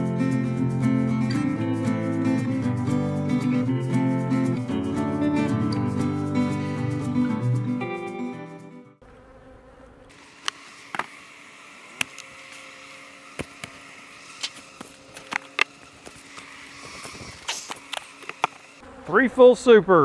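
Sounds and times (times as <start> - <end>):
bees buzzing: 0.0 - 20.0
knocks of wooden hive boxes: 13.3 - 13.8.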